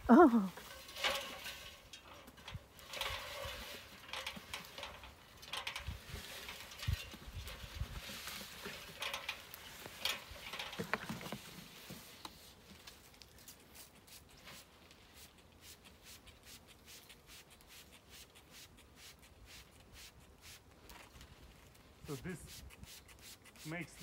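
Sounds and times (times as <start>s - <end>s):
rustling of fir branches: 0.0s - 15.8s, 19.4s - 22.4s
scraping and light knocks: 0.6s - 15.1s.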